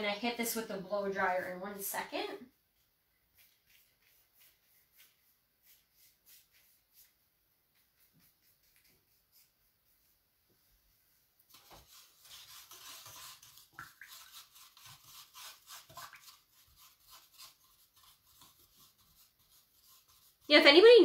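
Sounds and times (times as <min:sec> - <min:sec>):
faint rubbing strokes: 0:00.5 - 0:20.9.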